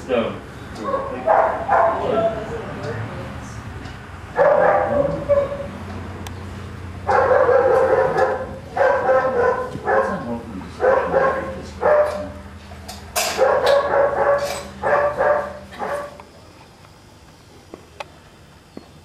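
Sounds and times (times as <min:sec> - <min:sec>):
dog barking: 0:00.8 - 0:02.4, 0:04.3 - 0:05.8, 0:07.0 - 0:12.4, 0:13.3 - 0:16.2.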